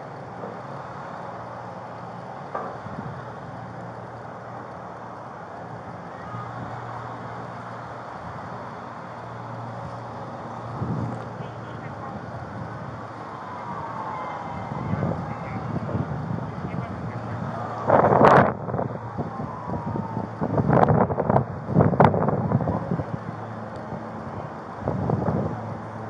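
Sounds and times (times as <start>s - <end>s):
street noise: 0.0s - 26.0s
wind on microphone: 9.6s - 26.0s.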